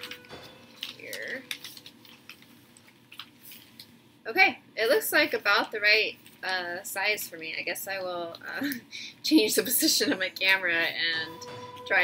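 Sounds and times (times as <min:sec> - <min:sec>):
newspaper rustling and crinkling: 0:00.0 - 0:04.0.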